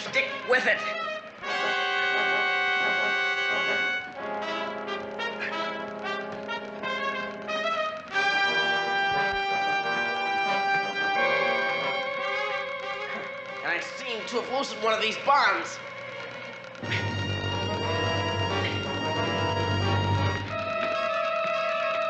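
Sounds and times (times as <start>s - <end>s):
orchestral brass chords: 0.3s - 15.0s, 16.8s - 22.0s.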